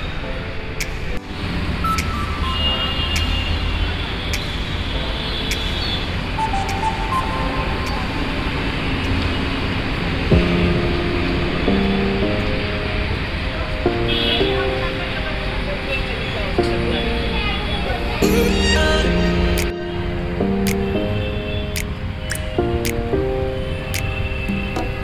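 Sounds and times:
music playing: 0.0s - 8.8s, 10.2s - 25.0s
city traffic rumble: 0.0s - 25.0s.

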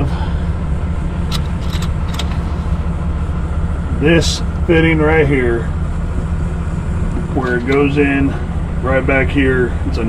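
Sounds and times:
low engine rumble: 0.0s - 10.0s.

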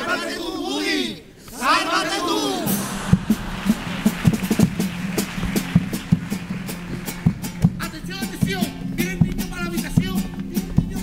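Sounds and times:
drums beating quick rhythm: 2.6s - 11.0s
low held chords: 2.7s - 10.6s.

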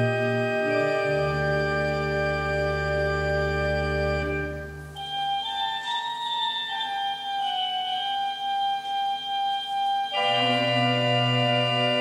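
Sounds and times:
pipe organ playing slowly: 0.0s - 12.0s.

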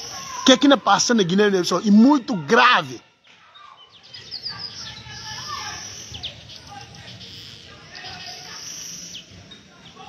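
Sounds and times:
birds chirping: 0.0s - 10.0s.

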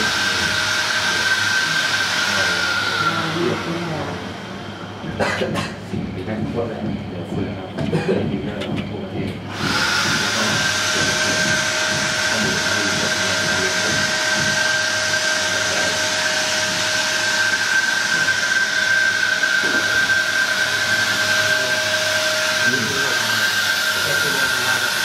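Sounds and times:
loud hiss of blown air: 0.0s - 4.3s, 9.5s - 25.0s
fogger motor whine: 0.0s - 25.0s.

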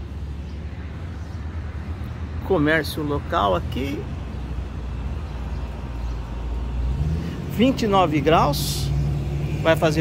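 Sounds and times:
road traffic rumble: 0.0s - 10.0s.

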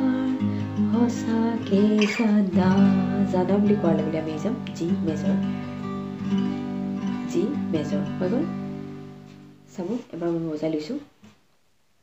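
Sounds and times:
acoustic guitar chord ringing: 0.0s - 9.7s.

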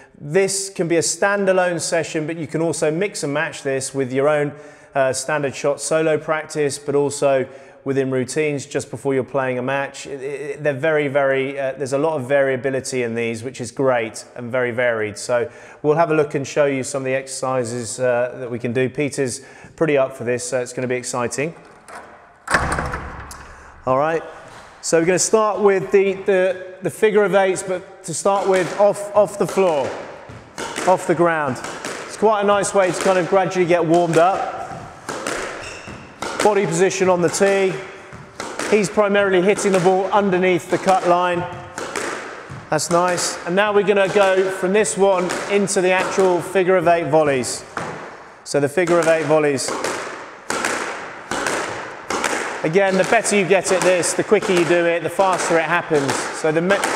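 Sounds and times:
ball hitting court walls: 21.3s - 23.8s, 27.5s - 56.9s
racket hitting squash ball: 21.3s - 24.8s, 27.4s - 56.9s
glass door clunk: 21.6s - 23.6s
glass door rattle: 21.6s - 23.6s.

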